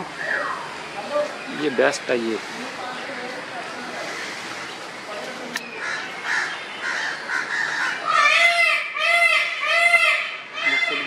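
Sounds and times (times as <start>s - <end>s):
bird calling loudly: 0.1s - 3.0s, 5.6s - 11.0s.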